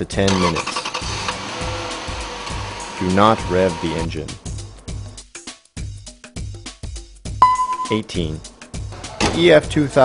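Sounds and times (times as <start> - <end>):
background music: 0.0 - 10.0
car engine idling: 0.3 - 4.9.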